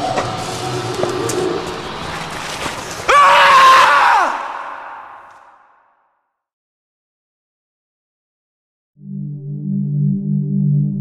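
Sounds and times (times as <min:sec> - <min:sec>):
person screaming with echo: 0:03.1 - 0:05.6.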